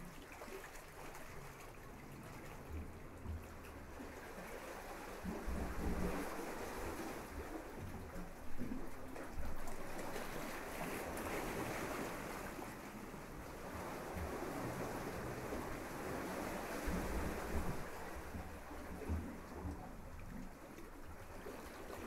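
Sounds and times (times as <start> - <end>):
small waves breaking on beach: 9.6 - 19.7.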